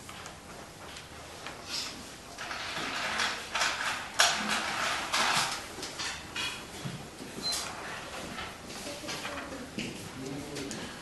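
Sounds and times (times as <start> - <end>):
rustling and shuffling: 0.0 - 11.0.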